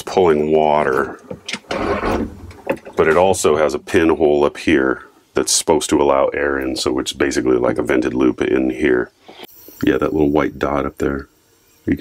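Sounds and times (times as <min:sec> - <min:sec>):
pump clicks: 0:00.8 - 0:03.3.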